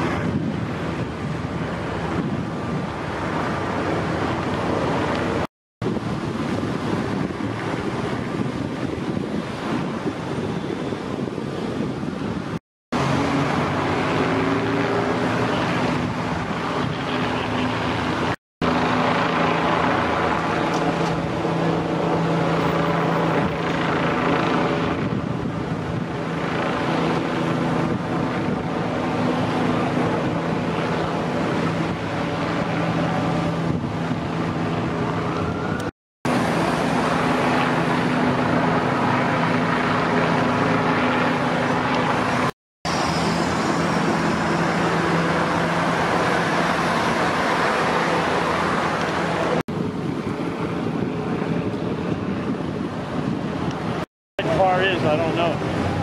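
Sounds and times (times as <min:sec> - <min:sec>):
cars passing by: 0:00.0 - 0:56.0
low engine drone: 0:13.0 - 0:56.0.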